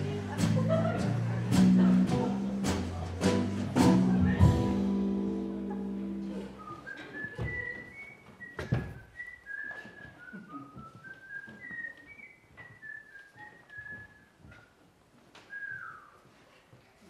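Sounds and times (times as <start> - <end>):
person whistling a tune: 6.6 - 14.6.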